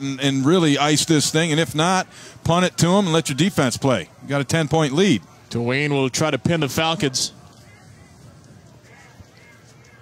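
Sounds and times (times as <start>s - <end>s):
stadium crowd murmur: 0.0s - 10.0s.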